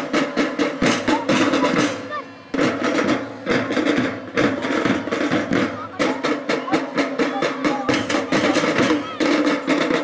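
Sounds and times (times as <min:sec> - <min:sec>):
loud drum strokes: 0:00.0 - 0:10.0
snare and bass drums: 0:00.0 - 0:10.0.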